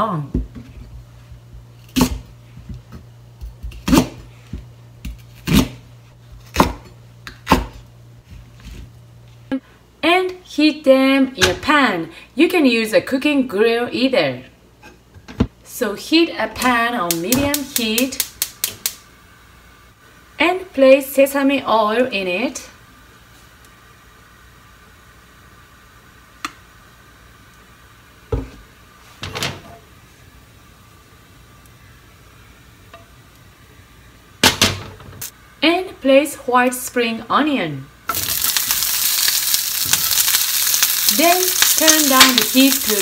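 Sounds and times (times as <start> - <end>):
gas hob igniter clicking: 17.1 - 19.0
onion sizzling in hot oil: 17.1 - 19.0, 38.1 - 43.0.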